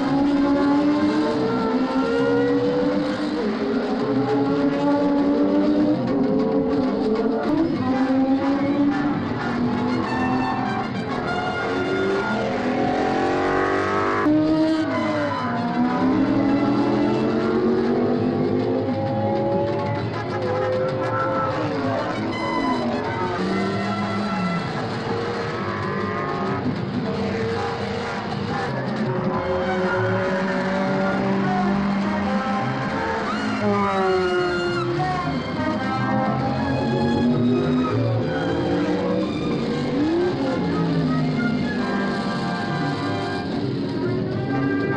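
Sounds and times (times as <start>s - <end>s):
racing cars passing at full throttle: 0.0s - 44.9s.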